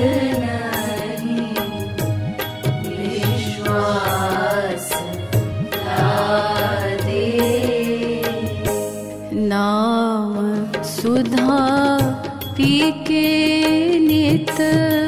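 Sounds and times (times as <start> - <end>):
rhythmic percussion: 0.0 - 9.6, 10.4 - 15.0.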